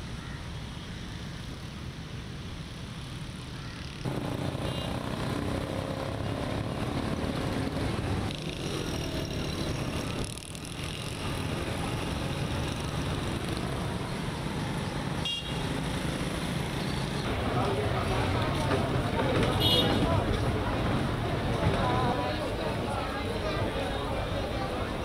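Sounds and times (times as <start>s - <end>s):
cars and motorcycles passing: 2.6s - 25.0s.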